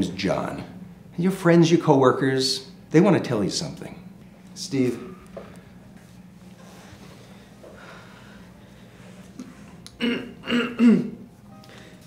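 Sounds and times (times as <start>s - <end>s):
quiet background music: 0.0s - 12.0s
man clearing his throat: 10.0s - 11.2s.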